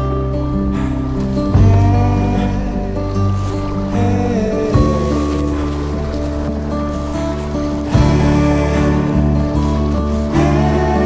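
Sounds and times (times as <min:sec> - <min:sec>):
music of long held notes: 0:00.0 - 0:11.0
river water rushing: 0:00.0 - 0:11.0.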